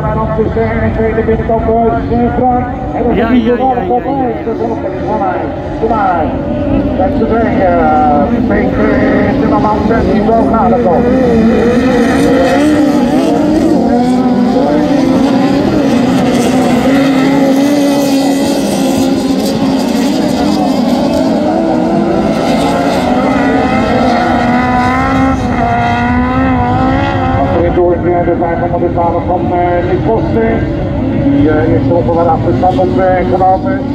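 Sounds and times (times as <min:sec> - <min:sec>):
race car engines revving: 0:00.0 - 0:33.9.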